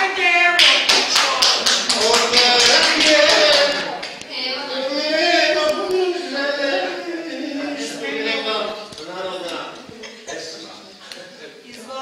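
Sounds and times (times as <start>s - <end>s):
person speaking: 0.0s - 12.0s
hand claps: 0.6s - 4.3s.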